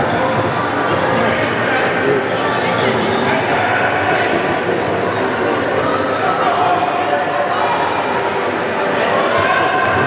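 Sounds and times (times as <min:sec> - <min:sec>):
players shouting in sports hall: 0:03.1 - 0:10.0.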